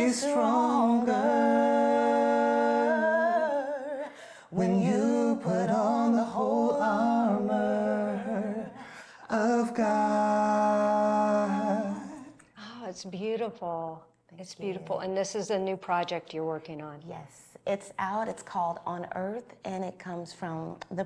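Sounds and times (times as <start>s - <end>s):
a cappella singing: 0.0s - 12.5s.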